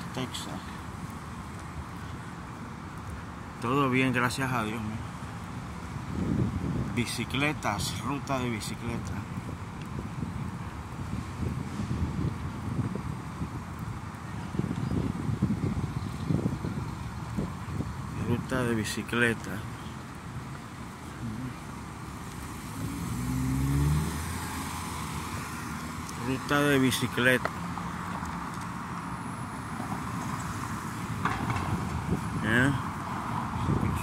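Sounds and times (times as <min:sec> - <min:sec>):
faint street traffic: 0:00.0 - 0:34.0
wind buffeting microphone: 0:05.2 - 0:34.0
car driving past: 0:22.3 - 0:26.1.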